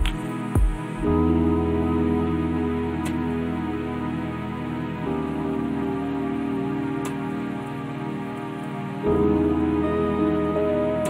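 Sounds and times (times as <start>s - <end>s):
soft new-age instrumental music: 0.0s - 11.0s.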